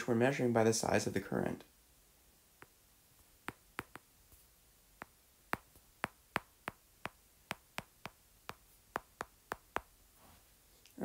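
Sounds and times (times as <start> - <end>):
stylus tapping on glass screen: 3.4 - 4.1, 5.0 - 10.0.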